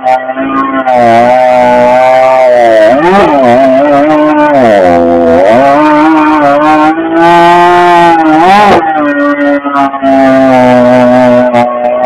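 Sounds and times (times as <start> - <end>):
chainsaw cutting through log: 0.0 - 12.0.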